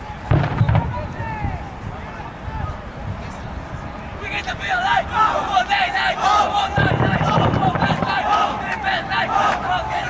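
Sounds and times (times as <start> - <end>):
young players shouting: 4.2 - 10.0
loud knocks: 6.8 - 8.2.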